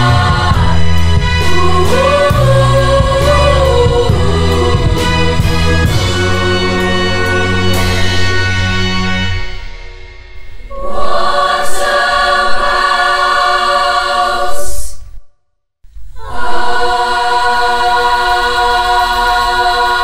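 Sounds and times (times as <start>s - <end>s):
choir singing held chords: 0.0s - 15.0s, 16.1s - 20.0s.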